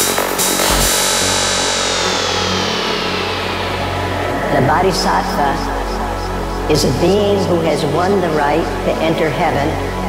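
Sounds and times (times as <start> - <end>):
low synth drone: 0.0 - 10.0.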